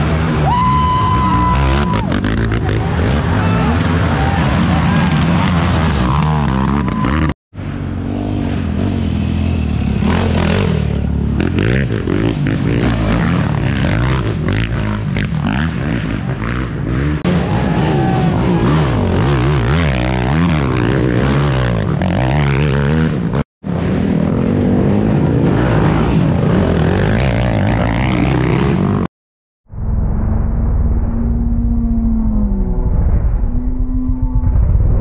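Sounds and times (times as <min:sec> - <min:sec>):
quad engines revving: 0:00.0 - 0:29.1.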